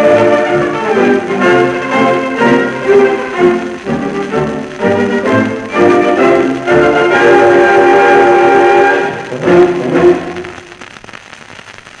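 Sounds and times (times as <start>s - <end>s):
record surface hiss and crackle: 0.0s - 12.0s.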